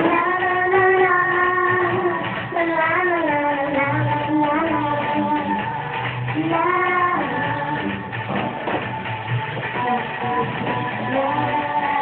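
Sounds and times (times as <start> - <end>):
girl singing: 0.0 - 8.6, 9.6 - 12.0.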